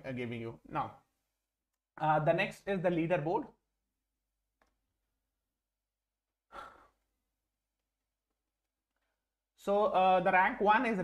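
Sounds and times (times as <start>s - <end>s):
man sighing: 6.5s - 7.0s.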